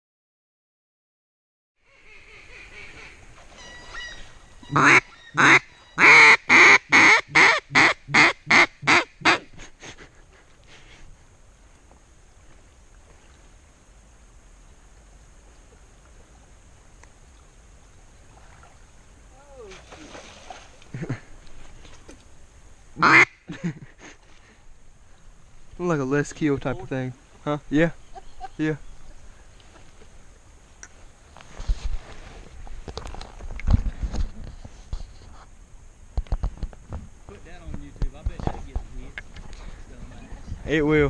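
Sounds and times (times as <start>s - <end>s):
faint duck quacking: 1.8s - 10.0s, 23.0s - 23.6s
swamp ambience: 1.8s - 41.0s.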